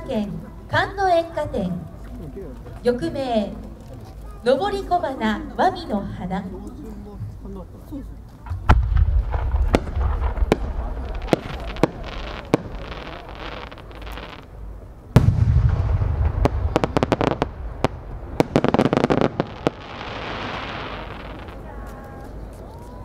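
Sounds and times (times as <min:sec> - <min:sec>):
firework launch thump: 0:08.5 - 0:13.2, 0:15.2 - 0:19.4
deep firework boom: 0:08.5 - 0:14.2, 0:15.1 - 0:21.7
sharp firework cracks: 0:08.5 - 0:22.3
rapid firework crackle: 0:08.5 - 0:22.6.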